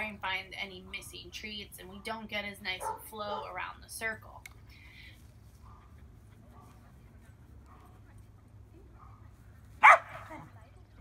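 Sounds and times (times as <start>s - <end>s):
dog barking: 2.8s - 3.1s, 9.8s - 10.4s.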